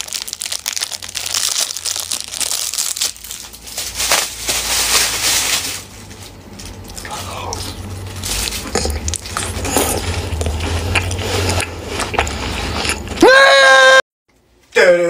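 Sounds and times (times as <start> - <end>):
plastic wrapper crinkling: 0.0 - 6.9.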